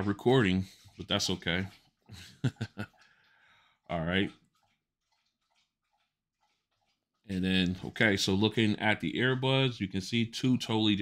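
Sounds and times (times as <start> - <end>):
dog lapping water from bowl: 0.0 - 9.7.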